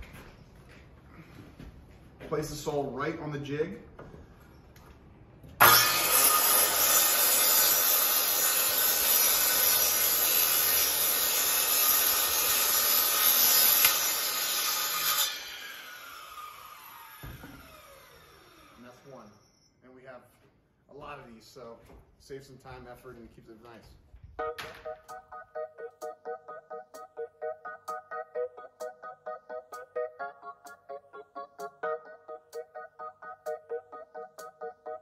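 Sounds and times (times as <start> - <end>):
circular saw cutting vinyl: 5.6 - 17.0, 24.4 - 35.0
saw blade spinning down: 5.6 - 18.8.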